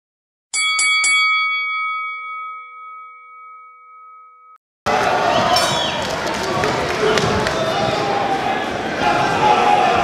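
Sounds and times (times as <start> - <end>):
boxing bell ringing: 0.5 - 4.6.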